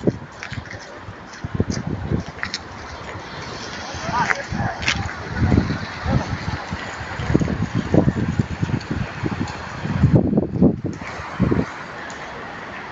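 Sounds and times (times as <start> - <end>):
wind buffeting microphone: 0.0 - 12.9.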